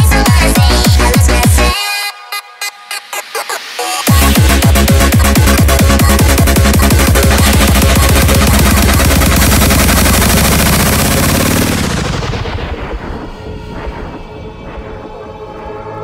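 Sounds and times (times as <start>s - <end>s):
sped-up hardcore dance music: 0.0s - 16.0s
rapid drum hits: 4.1s - 15.1s.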